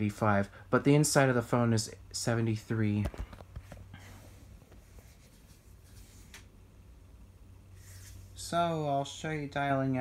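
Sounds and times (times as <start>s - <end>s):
low steady hum: 0.0s - 10.0s
faint scratchy rubbing: 4.2s - 6.4s, 7.8s - 8.5s.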